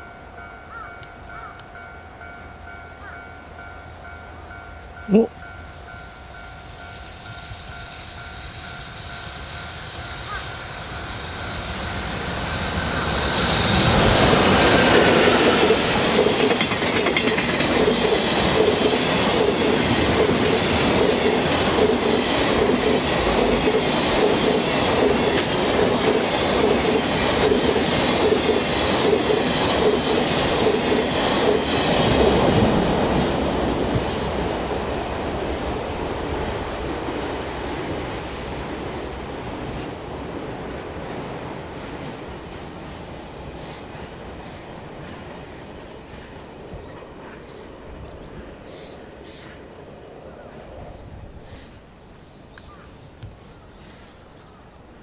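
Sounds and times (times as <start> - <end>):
electric locomotive passing: 0.0 - 55.0.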